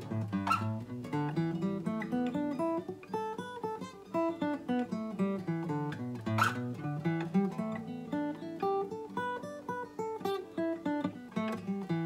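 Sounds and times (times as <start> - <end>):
acoustic guitar picked notes: 0.0 - 12.0.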